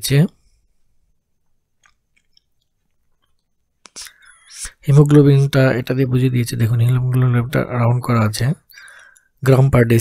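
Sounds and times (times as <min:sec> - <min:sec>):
man speaking: 0:00.0 - 0:00.4, 0:03.9 - 0:08.7, 0:09.4 - 0:10.0
mouth noises: 0:03.8 - 0:05.2
man breathing: 0:04.0 - 0:04.6, 0:08.7 - 0:09.4.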